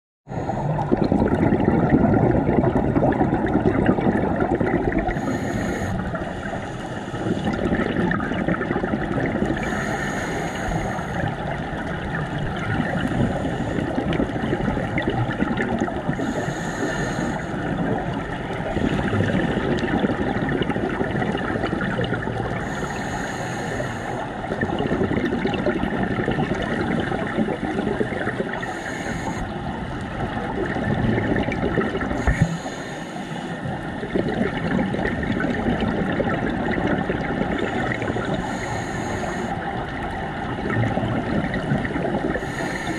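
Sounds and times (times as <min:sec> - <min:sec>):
regulator inhale hiss: 0:00.3 - 0:00.8, 0:05.0 - 0:07.6, 0:09.5 - 0:11.5, 0:13.1 - 0:14.2, 0:16.1 - 0:19.2, 0:22.6 - 0:24.4, 0:28.4 - 0:29.6, 0:32.2 - 0:33.9, 0:37.7 - 0:39.7, 0:42.4 - 0:42.9
exhaled bubbles gurgling: 0:00.3 - 0:42.9
muffled underwater noise: 0:00.3 - 0:42.9.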